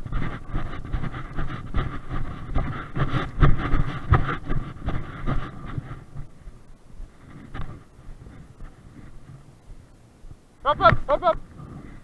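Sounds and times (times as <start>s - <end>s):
footsteps crunching through grass: 0.0s - 12.0s
wind rumble on microphone: 0.0s - 12.0s.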